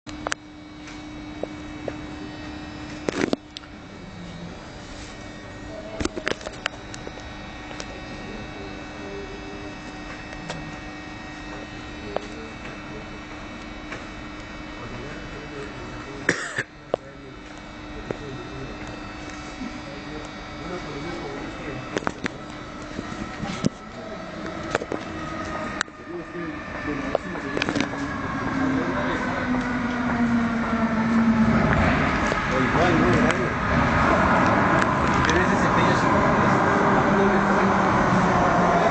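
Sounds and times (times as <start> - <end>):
steady hum: 0.1 - 38.9
electric train rumbling: 19.8 - 38.9.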